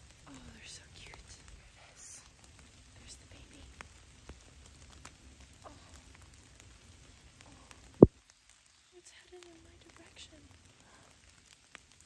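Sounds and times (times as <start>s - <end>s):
light rain pattering on leaves: 0.0s - 12.0s.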